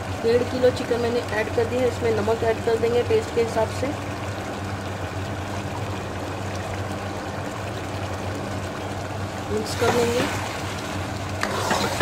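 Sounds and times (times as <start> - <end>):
chicken sizzling in oil: 0.0 - 12.0
low steady hum: 0.0 - 12.0.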